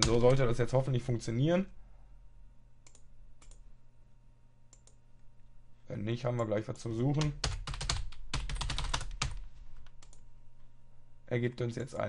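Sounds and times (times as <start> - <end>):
low steady hum: 0.0 - 12.0
computer keyboard typing: 7.2 - 10.2.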